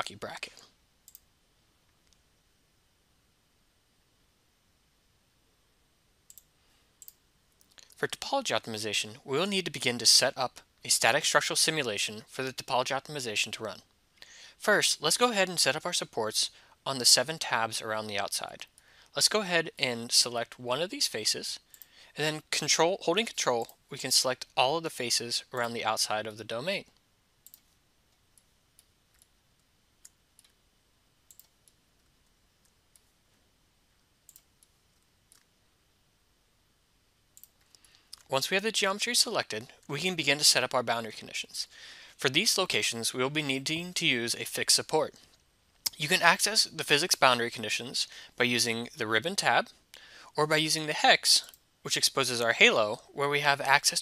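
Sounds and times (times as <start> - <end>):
computer mouse clicking: 6.3 - 7.9, 27.4 - 30.6, 31.3 - 33.1, 34.3 - 35.5.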